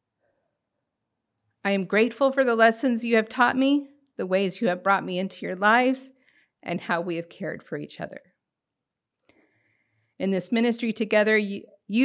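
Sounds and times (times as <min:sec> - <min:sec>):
woman speaking into a microphone: 0:01.7 - 0:06.1, 0:10.2 - 0:12.0.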